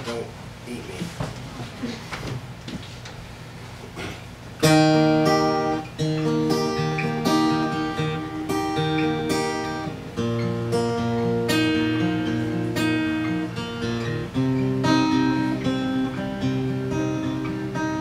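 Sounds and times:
acoustic guitar picked chords: 4.6 - 18.0.

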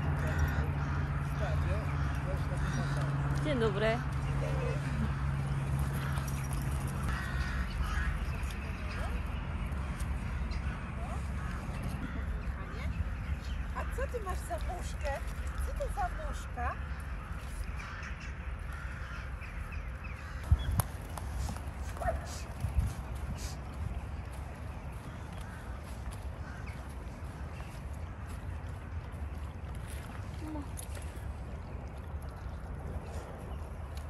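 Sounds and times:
wild birds calling: 0.0 - 30.2.

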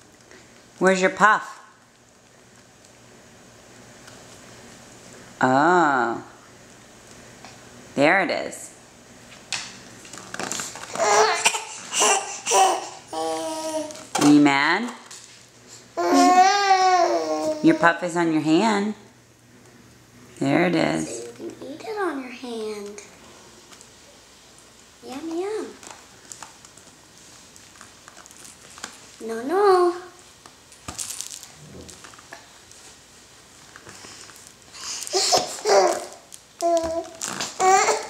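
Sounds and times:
baby babbling: 10.9 - 13.9, 16.0 - 17.7, 35.1 - 37.0, 37.6 - 38.0.

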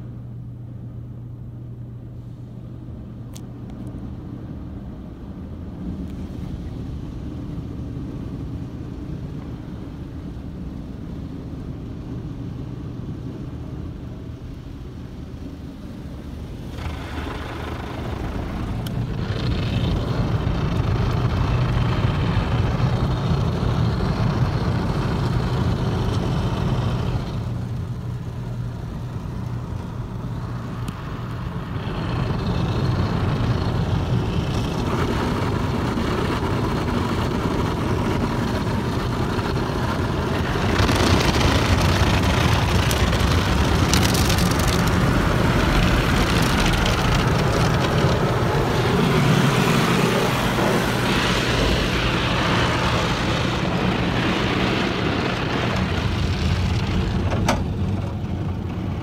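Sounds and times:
steady machine hum: 0.0 - 59.0
water spraying: 16.4 - 59.0.

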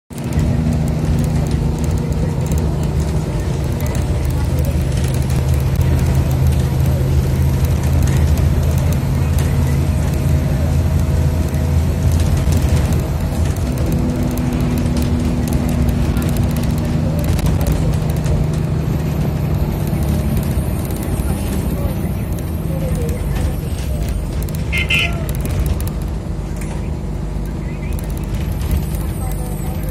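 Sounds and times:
road noise inside vehicle: 0.1 - 29.9
vehicle engine drone: 0.1 - 29.9.

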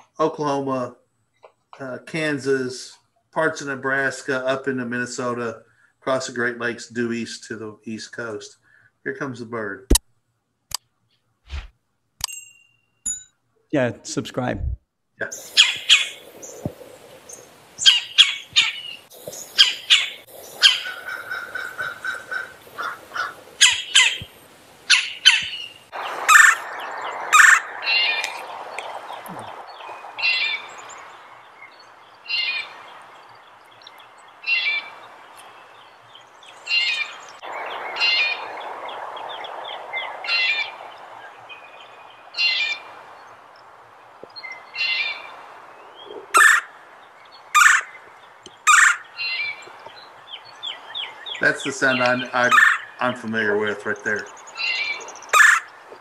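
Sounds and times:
woodpecker calling: 15.4 - 56.0.

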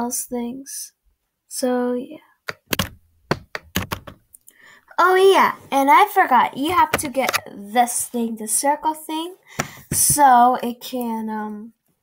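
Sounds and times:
drawing tools knocking on desk: 2.5 - 4.2, 6.7 - 7.1, 9.6 - 10.2.

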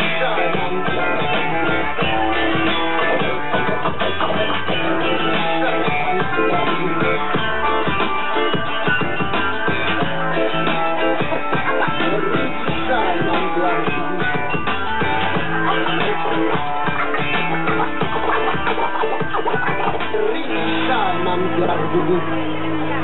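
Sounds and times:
ska-rock band playing: 0.0 - 22.4
strummed electric guitar: 0.0 - 23.0.

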